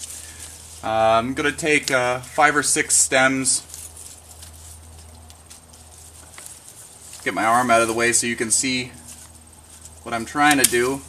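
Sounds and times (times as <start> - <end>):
leaves rustling as handled: 0.0 - 11.0
steady low hum: 0.0 - 11.0.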